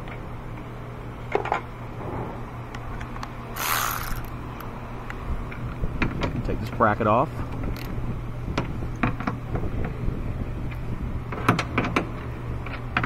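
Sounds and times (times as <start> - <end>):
cordless power tool running: 3.6 - 4.4.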